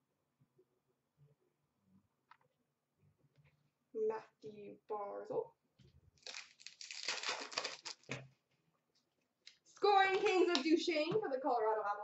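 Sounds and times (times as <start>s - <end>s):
foil wrapper crinkling and tearing: 6.2s - 8.2s.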